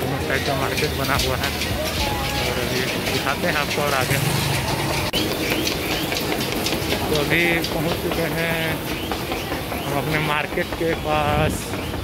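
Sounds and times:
busy street noise: 0.0 - 12.0.

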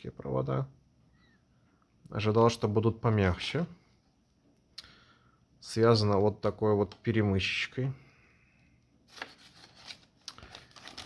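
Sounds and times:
plastic bag rustling: 9.0 - 11.0.

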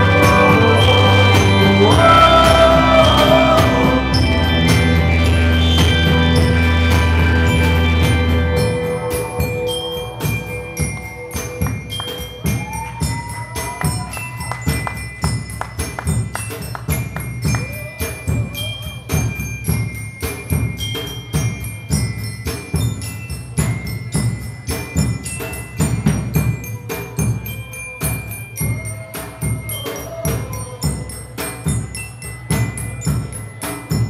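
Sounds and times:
bell-like sustained tones: 0.0 - 34.0
keyboard: 0.0 - 34.0
live band instrumental: 0.0 - 34.0
steady drum beat: 0.0 - 34.0.

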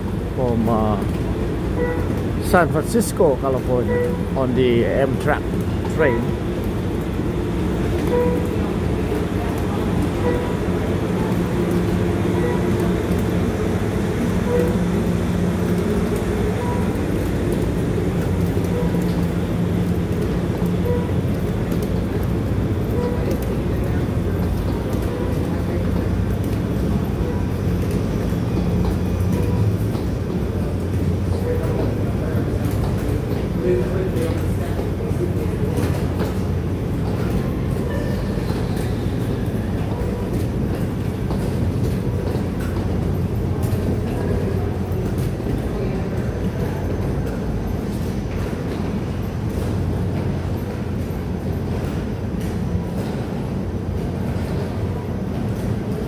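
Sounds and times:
suitcases rolling on concrete: 0.0 - 56.0.

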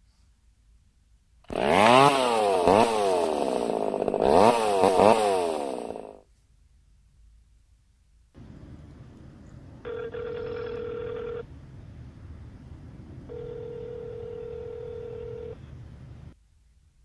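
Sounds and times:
low background rumble: 6.9 - 17.0
telephone ringing: 9.8 - 11.4, 13.3 - 15.6.

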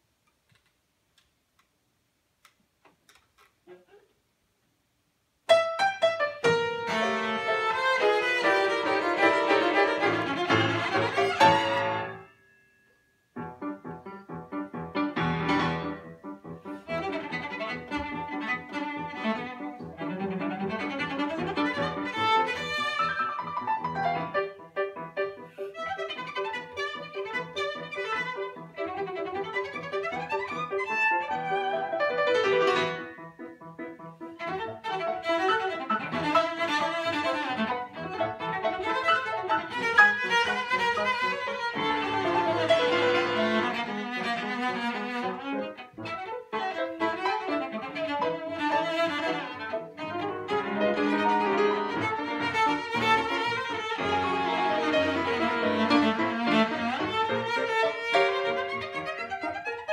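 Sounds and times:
grand piano: 5.5 - 59.9
bowed cello: 6.5 - 12.2, 15.2 - 24.6, 25.4 - 33.2, 34.3 - 59.9.

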